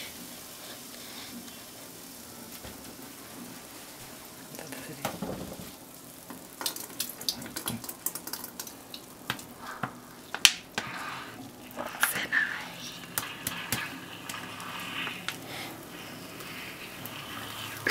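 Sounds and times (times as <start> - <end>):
cola fizzing: 0.0 - 17.9.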